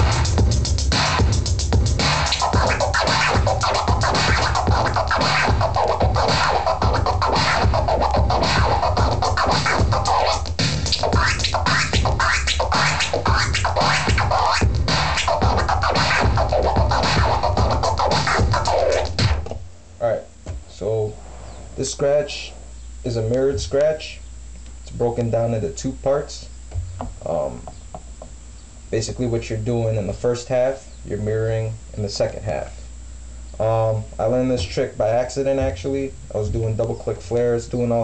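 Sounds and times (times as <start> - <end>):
hip hop beat: 0.0 - 19.6, 34.5 - 37.5
turntable scratching: 0.0 - 19.6, 34.2 - 38.0.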